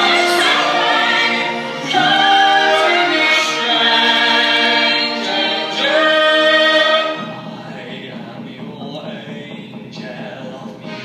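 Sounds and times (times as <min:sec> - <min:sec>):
operatic singing voices: 0:00.0 - 0:11.0.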